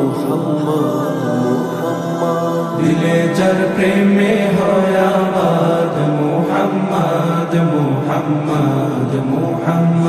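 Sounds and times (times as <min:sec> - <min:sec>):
chorus chanting: 0:00.0 - 0:10.0
men singing devotional song: 0:00.0 - 0:10.0.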